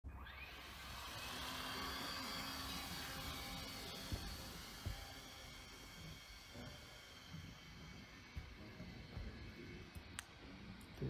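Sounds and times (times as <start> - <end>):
small electric motor whining: 0.1 - 11.0.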